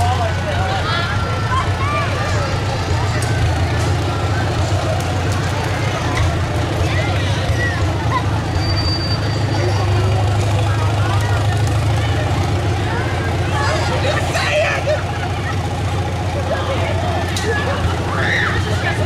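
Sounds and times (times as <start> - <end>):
people's voices and calls: 0.0 - 19.0
tractor engine running: 0.0 - 19.0.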